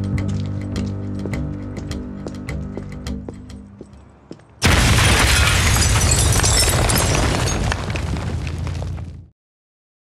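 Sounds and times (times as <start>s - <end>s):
scattered crackles: 7.1s - 9.3s.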